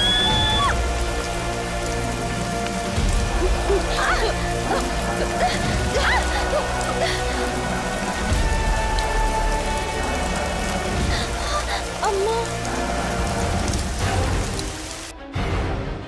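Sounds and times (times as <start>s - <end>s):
water spraying: 0.0s - 15.1s.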